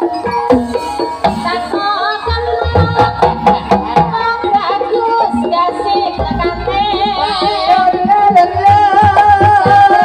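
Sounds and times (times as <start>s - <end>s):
hand drums and percussion: 0.0s - 10.0s.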